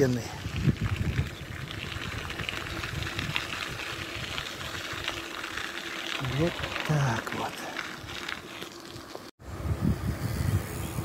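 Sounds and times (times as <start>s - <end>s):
bicycle tyres on gravel: 0.0s - 9.3s
bike ticking and rattling: 0.0s - 9.3s.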